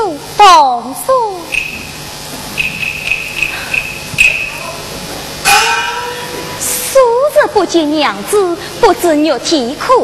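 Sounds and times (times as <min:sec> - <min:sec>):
cricket chirping: 0:01.5 - 0:01.9, 0:02.6 - 0:04.6.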